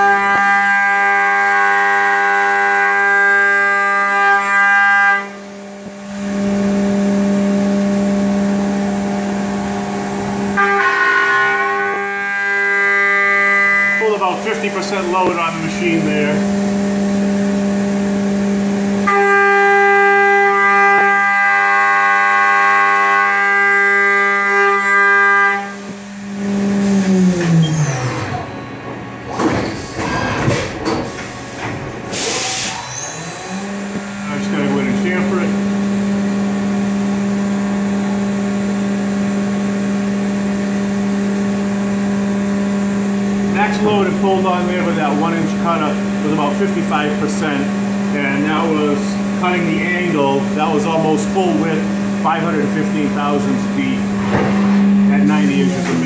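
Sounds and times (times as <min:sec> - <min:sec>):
mill spindle whining: 0:05.2 - 0:56.0.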